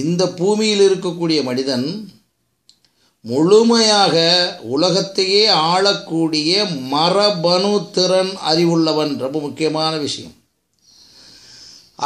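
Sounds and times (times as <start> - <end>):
man speaking: 0.0 - 2.3, 3.2 - 10.4.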